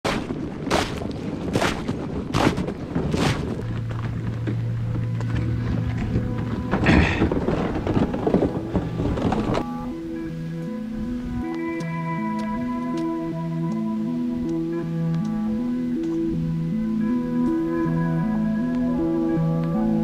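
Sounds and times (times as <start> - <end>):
heavy thuds: 0.0 - 10.0
low steady drone: 2.8 - 20.0
music: 3.6 - 20.0.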